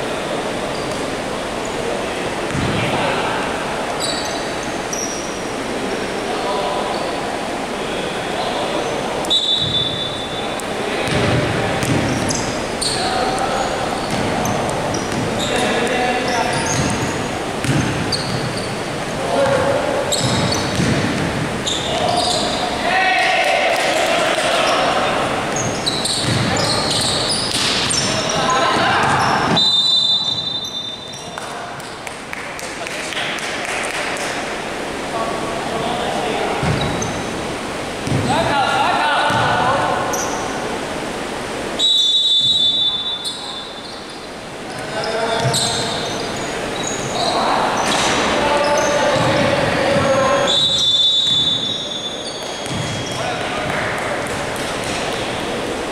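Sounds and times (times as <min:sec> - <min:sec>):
sneakers squeaking: 0:00.7 - 0:03.1, 0:03.8 - 0:05.7, 0:06.7 - 0:07.3, 0:08.4 - 0:23.0, 0:24.3 - 0:32.0, 0:36.6 - 0:37.4, 0:38.0 - 0:38.4, 0:39.2 - 0:40.6, 0:41.8 - 0:55.7
players calling out: 0:01.7 - 0:31.6, 0:44.7 - 0:55.7
basketball bouncing on wooden court: 0:02.5 - 0:02.8, 0:11.0 - 0:12.4, 0:14.0 - 0:15.5, 0:16.5 - 0:18.7, 0:19.5 - 0:22.5, 0:25.5 - 0:29.6, 0:36.6 - 0:37.2, 0:38.0 - 0:38.3, 0:39.3 - 0:39.7, 0:45.4 - 0:46.3, 0:49.1 - 0:50.2, 0:52.6 - 0:55.3.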